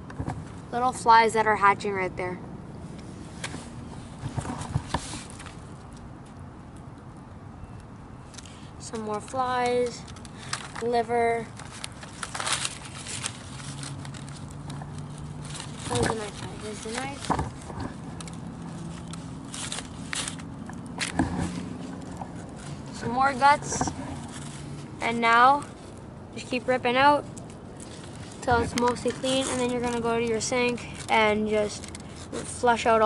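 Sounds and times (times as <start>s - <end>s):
newspaper crackling and rustling: 3.4s - 6.0s, 8.9s - 33.0s.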